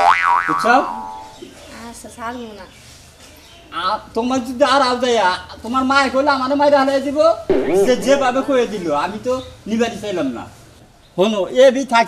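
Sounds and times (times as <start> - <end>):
cartoon boing sound effect: 0.0 - 1.4, 7.5 - 9.0.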